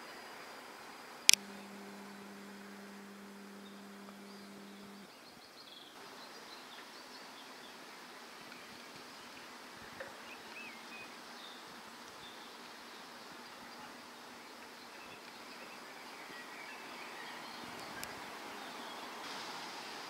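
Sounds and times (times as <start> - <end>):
distant town background noise: 0.0 - 20.0
steady low hum: 1.3 - 5.1
faint bird chirps: 1.3 - 7.8.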